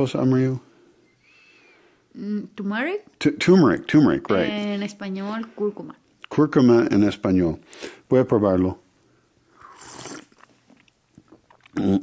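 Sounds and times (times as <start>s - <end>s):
person slurping tea: 9.5s - 12.0s.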